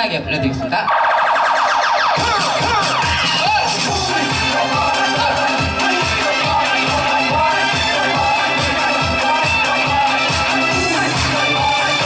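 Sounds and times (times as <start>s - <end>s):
dance beat: 1.0s - 12.0s.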